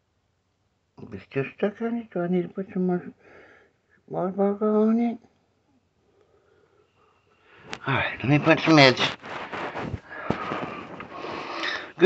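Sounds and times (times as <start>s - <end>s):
hand stroking fur: 7.8s - 11.8s.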